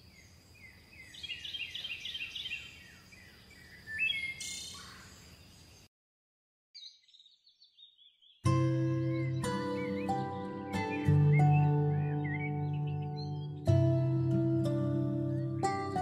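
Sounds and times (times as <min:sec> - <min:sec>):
bird singing high notes: 0:08.5 - 0:16.0.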